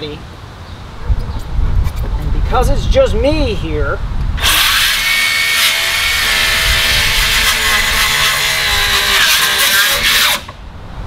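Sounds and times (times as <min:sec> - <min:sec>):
circular saw cutting wood: 0:04.4 - 0:10.6.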